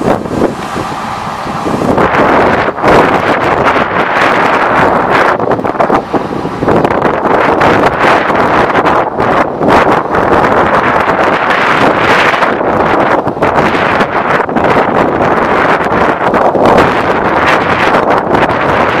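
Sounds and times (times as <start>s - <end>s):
low rumble of departing train: 0.0s - 19.0s
wind buffeting microphone: 0.0s - 19.0s.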